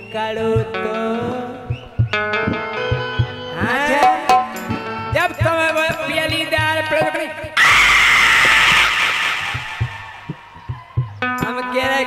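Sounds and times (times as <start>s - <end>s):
soft hand drum beats: 0.4s - 7.2s, 9.5s - 12.0s
loud rough shout: 7.6s - 10.5s.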